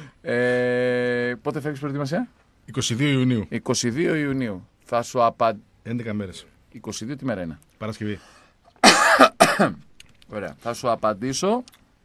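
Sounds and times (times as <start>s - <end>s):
person coughing: 8.8s - 9.8s.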